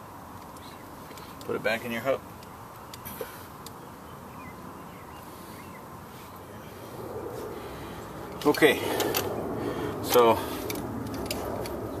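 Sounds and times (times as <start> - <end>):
outdoor background noise: 0.0 - 12.0
low rumble: 6.6 - 10.1.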